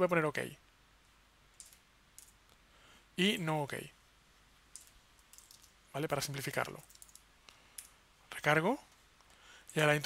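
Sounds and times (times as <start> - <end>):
keyboard and mouse clicks: 1.6 - 2.6, 4.7 - 5.8, 6.8 - 8.0.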